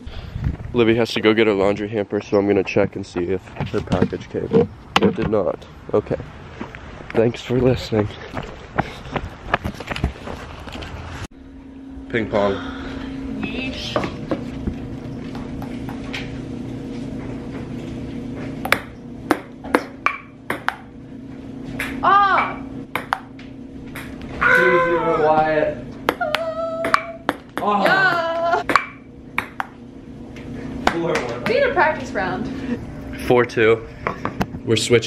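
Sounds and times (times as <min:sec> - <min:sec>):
steady low hum: 0:00.0 - 0:35.0
ping pong ball clicking: 0:18.6 - 0:20.8, 0:21.8 - 0:23.4, 0:26.1 - 0:28.0, 0:28.7 - 0:29.8.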